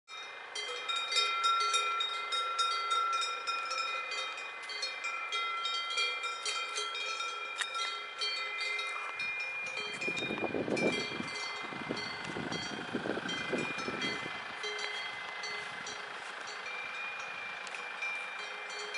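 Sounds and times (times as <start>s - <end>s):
cow bells clanking: 0.1s - 18.9s
wind on microphone: 9.8s - 15.8s.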